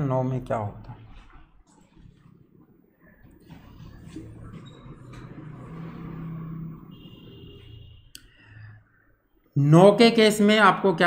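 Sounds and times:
man speaking: 0.0s - 1.2s, 9.6s - 11.0s
marker writing on whiteboard: 0.9s - 6.1s
marker squeak: 3.5s - 5.4s.

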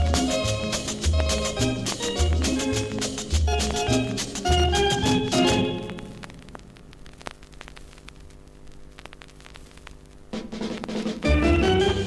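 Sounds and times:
steady low hum: 0.0s - 11.3s
vinyl clicks and crackle: 0.0s - 12.0s
vinyl pops: 0.0s - 12.0s.

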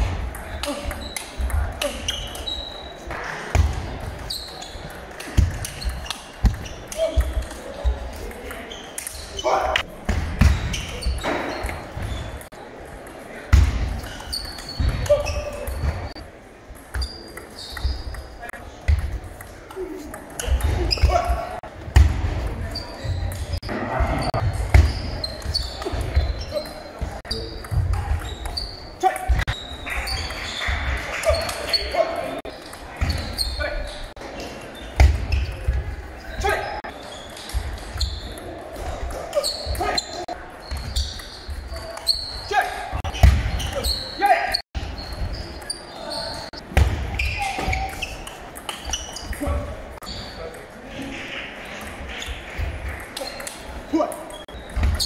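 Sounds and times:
hall full of voices: 0.0s - 55.0s.

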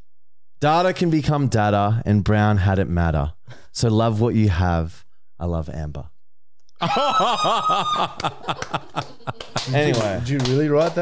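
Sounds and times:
men laughing hard: 6.8s - 9.9s
sharp hand claps: 8.2s - 11.0s.

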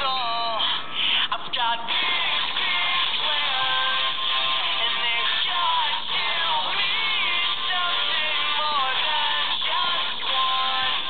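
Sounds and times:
song with instrumental backing: 1.8s - 11.0s.

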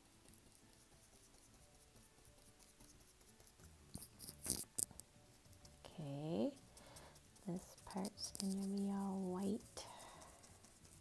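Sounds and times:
paintbrush taps and clicks: 0.2s - 5.8s, 6.6s - 11.0s.

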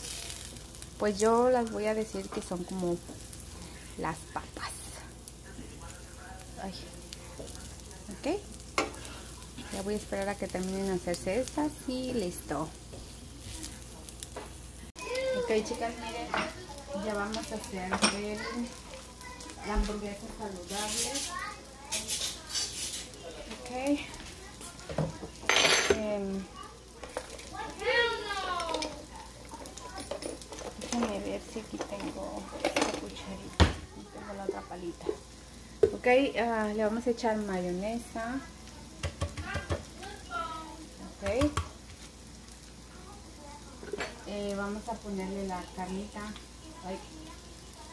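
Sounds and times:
food sizzling on a griddle: 0.0s - 47.9s
knife scraping a plate: 21.9s - 23.1s
turner clicking against pan: 39.0s - 39.9s.

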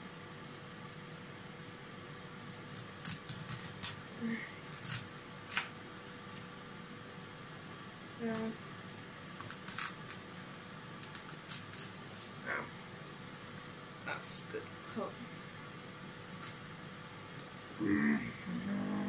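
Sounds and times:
fan hum: 0.0s - 19.0s.

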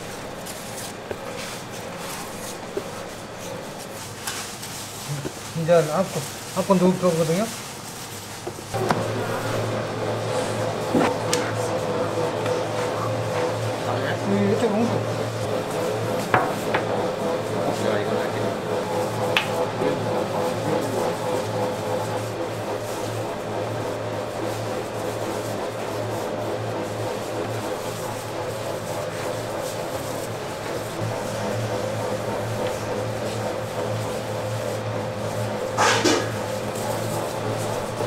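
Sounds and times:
kitchen equipment humming: 0.0s - 38.0s.

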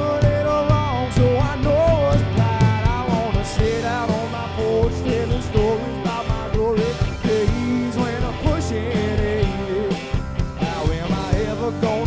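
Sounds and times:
bending lead guitar melody: 0.0s - 12.0s
drums keeping a steady beat: 0.0s - 12.0s
live rock band playing: 0.0s - 12.0s.

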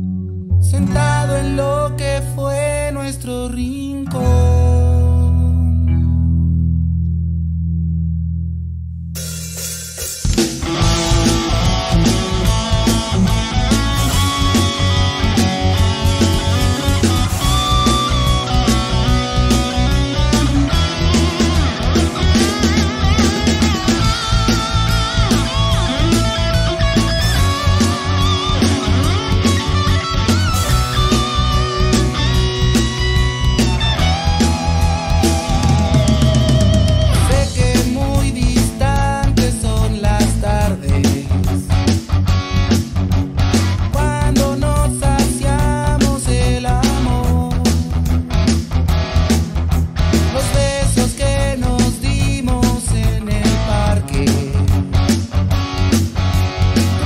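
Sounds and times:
electric guitar: 0.0s - 57.0s
steady bass: 0.0s - 57.0s
rock band with drums: 9.2s - 57.0s.

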